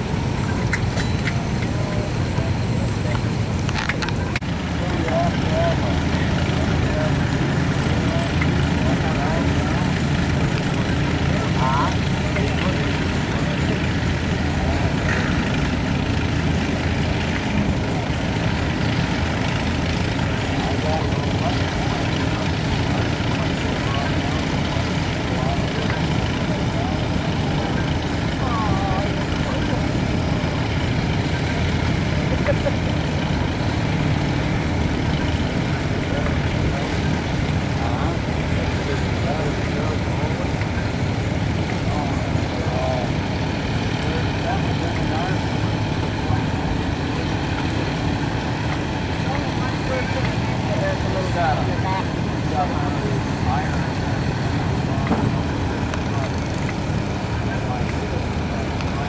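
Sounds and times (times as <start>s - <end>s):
faint voices: 0.0s - 59.0s
tractor engines rumbling: 0.0s - 59.0s.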